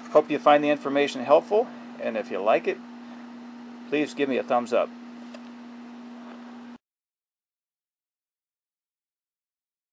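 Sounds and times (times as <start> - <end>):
low hum with hiss: 0.0 - 6.8.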